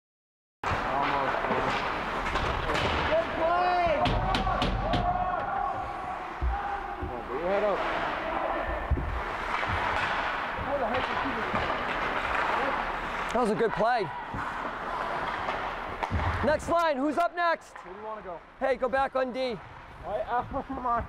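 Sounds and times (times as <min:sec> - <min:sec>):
hockey sticks and puck clacking: 0:00.7 - 0:18.0
echoing indistinct shouts: 0:03.1 - 0:09.2, 0:14.0 - 0:14.6.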